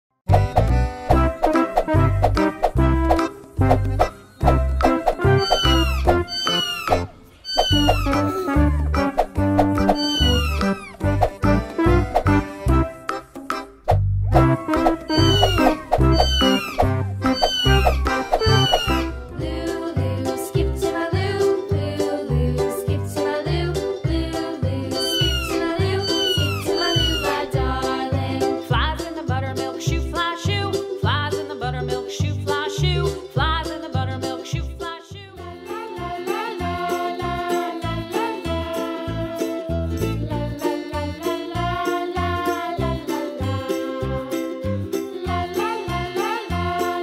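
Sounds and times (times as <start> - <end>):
children's music with steady beat: 0.3 - 47.0
kitten mewing: 5.4 - 8.6, 9.9 - 10.8, 15.1 - 18.0, 25.0 - 27.4.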